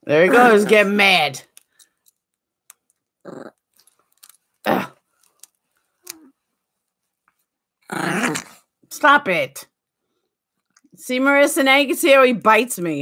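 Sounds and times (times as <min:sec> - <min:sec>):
small dog growling: 0:03.2 - 0:03.6, 0:07.8 - 0:08.6.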